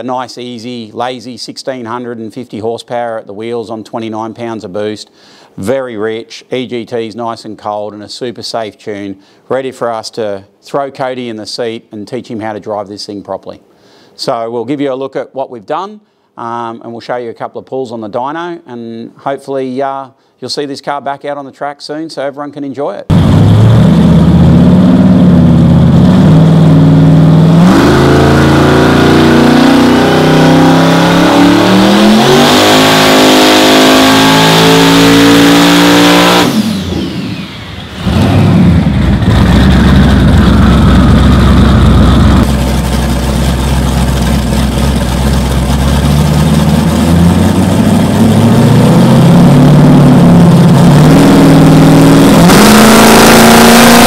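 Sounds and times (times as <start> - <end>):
engine revving at full throttle: 23.1 - 54.0.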